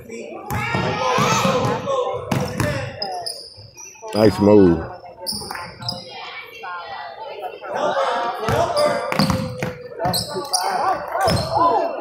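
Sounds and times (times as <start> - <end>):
spectators' voices echoing: 4.1 - 12.0.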